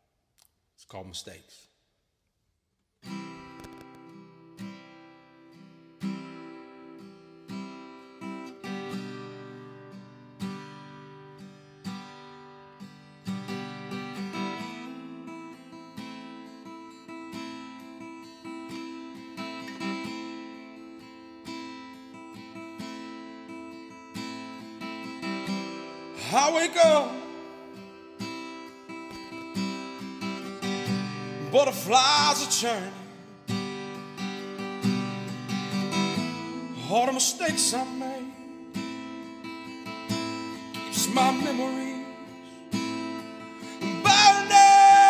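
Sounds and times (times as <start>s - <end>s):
acoustic guitar chords: 3.0s - 45.0s.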